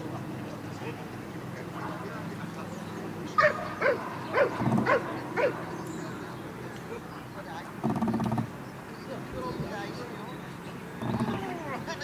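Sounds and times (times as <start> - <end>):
dog barking: 3.4 - 5.6.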